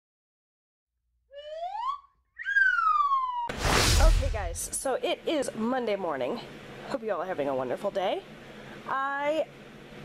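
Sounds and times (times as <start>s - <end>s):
wolf whistle: 1.9s - 3.5s
loud whoosh: 3.5s - 4.8s.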